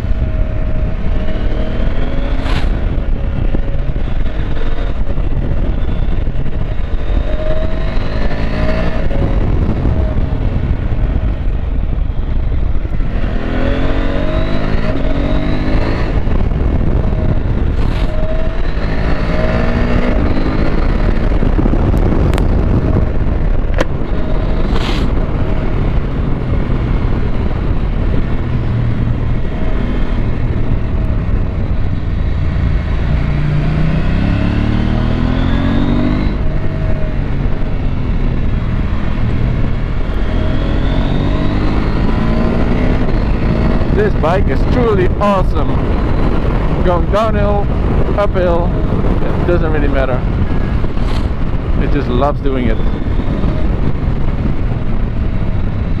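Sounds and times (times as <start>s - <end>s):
motorcycle engine accelerating: 0.0s - 56.0s
wind rushing over microphone: 0.0s - 56.0s.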